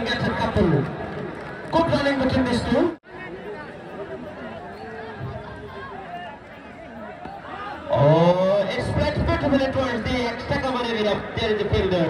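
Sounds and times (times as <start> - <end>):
crowd murmur: 0.0 - 9.0
man speaking excitedly: 7.9 - 12.0.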